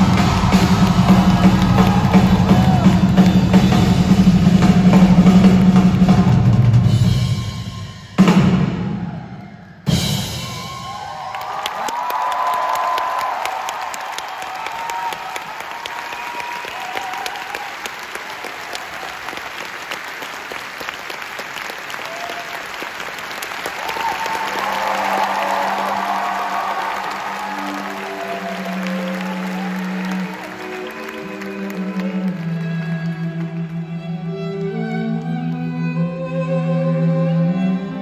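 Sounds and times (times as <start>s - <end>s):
audience applauding and cheering: 0.0s - 36.1s
orchestra low string notes: 25.7s - 38.0s.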